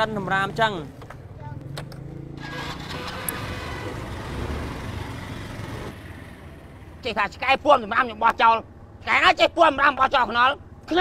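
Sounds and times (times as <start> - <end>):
scooter engine running: 0.1 - 7.0.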